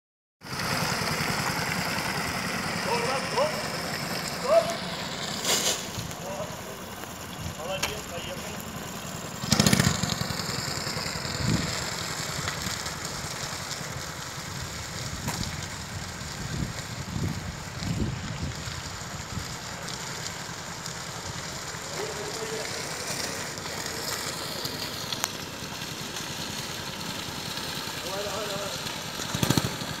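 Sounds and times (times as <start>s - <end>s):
kart engine running: 0.4s - 30.0s.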